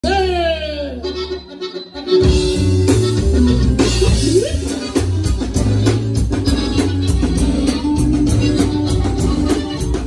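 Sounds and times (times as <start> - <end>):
drums: 0.0 - 10.0
electric bass: 0.0 - 10.0
accordion: 0.7 - 10.0.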